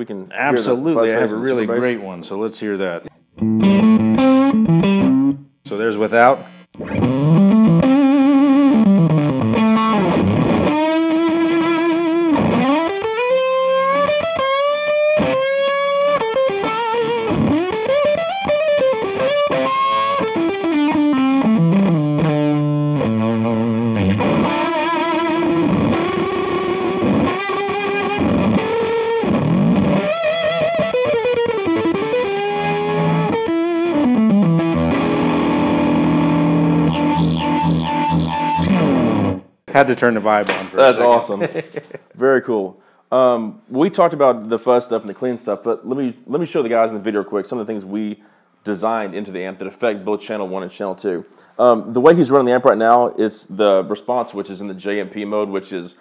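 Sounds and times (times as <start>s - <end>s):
distorted electric guitar lead: 3.4s - 5.6s, 6.4s - 39.6s.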